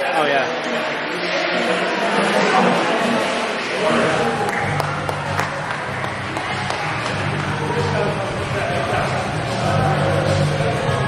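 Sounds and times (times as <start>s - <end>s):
background music: 0.0s - 11.0s
crowd chatter: 0.0s - 11.0s.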